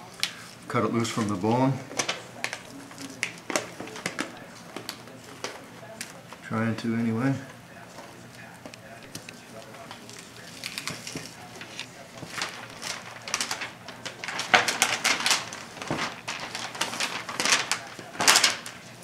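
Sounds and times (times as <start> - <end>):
butcher paper crinkling: 0.0 - 19.0.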